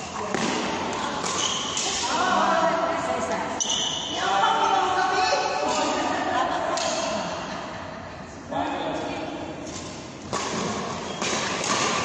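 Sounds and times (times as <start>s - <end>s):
shoes thudding and squeaking: 10.6s - 12.0s.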